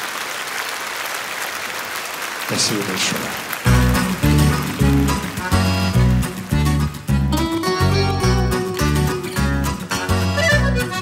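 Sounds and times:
live band playing: 0:03.6 - 0:11.0.

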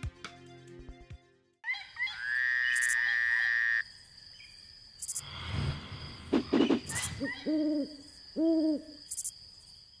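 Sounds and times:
owl hooting: 0:06.9 - 0:09.0.

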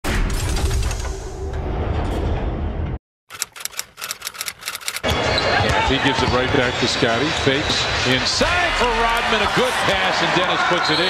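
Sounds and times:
sharp clicks: 0:03.3 - 0:05.0
basketball arena crowd noise: 0:05.0 - 0:11.0.

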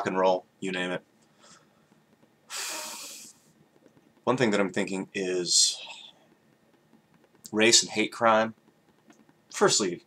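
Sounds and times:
man breathing: 0:01.2 - 0:03.4.

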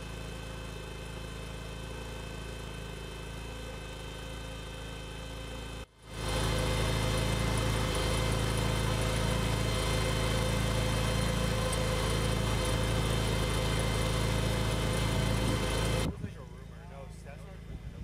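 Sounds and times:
engine idling: 0:00.0 - 0:18.0.

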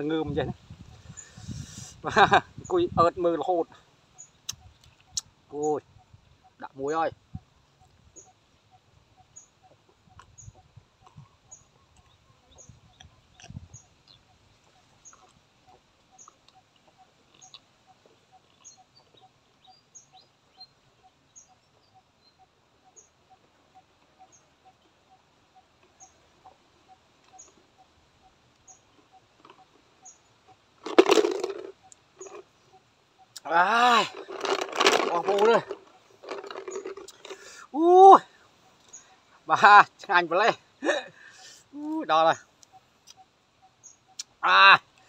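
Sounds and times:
faint regular chirping: 0:00.0 - 0:30.9, 0:31.5 - 0:45.0.

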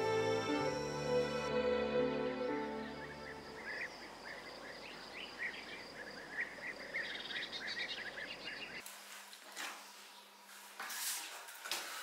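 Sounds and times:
background hiss: 0:00.0 - 0:12.0
bird chirps: 0:02.8 - 0:08.8.

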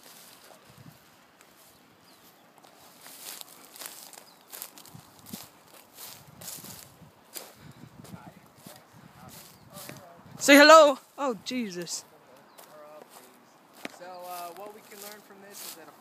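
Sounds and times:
footsteps through dry grass: 0:00.0 - 0:16.0.

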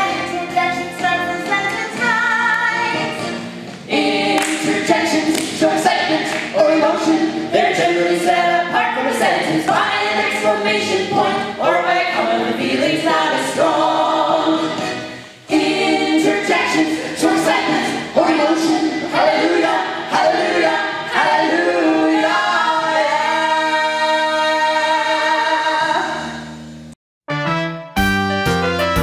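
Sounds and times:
group singing in harmony: 0:01.4 - 0:26.5.

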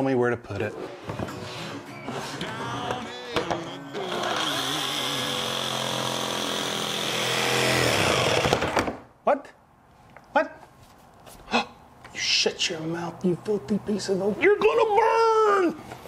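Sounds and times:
jigsaw cutting wood: 0:04.0 - 0:08.8.

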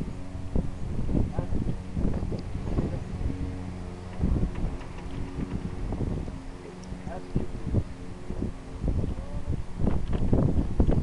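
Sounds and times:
low mechanical hum: 0:00.0 - 0:11.0
wind buffeting microphone: 0:00.0 - 0:11.0.

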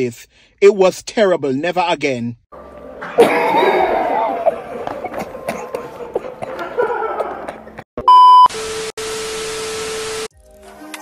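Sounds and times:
music: 0:02.5 - 0:06.5, 0:10.3 - 0:11.0
loud high beep: 0:08.1 - 0:08.6.

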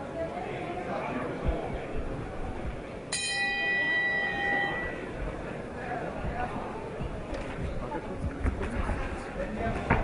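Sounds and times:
boxing ring bell ringing: 0:03.1 - 0:05.1.

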